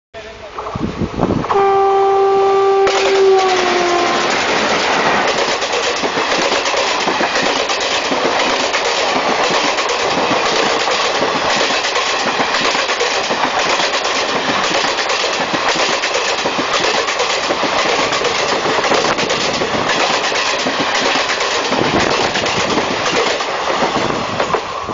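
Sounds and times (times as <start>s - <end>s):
train passing at speed: 0.2s - 24.9s
train horn sounding: 1.5s - 5.0s
wheels clattering over rail joints: 2.9s - 24.7s.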